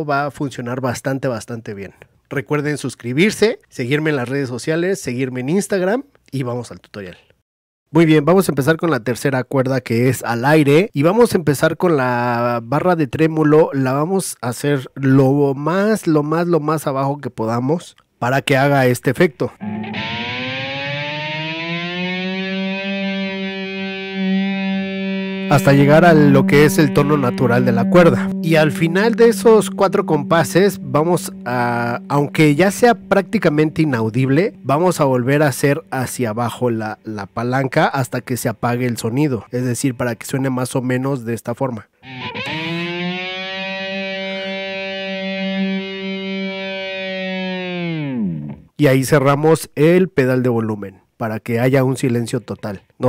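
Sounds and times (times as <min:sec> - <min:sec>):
electric guitar note gliding up: 0:19.6 - 0:36.6, 0:42.0 - 0:48.7.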